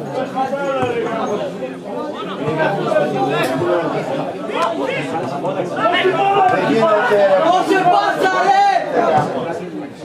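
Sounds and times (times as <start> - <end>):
spectators chattering and calling out: 0.0 - 10.0
loud shout: 5.8 - 9.2.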